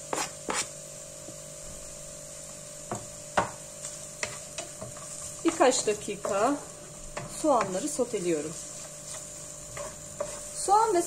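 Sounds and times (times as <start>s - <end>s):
steady low hum: 0.0s - 11.0s
spatula scraping cutting board: 7.2s - 10.7s.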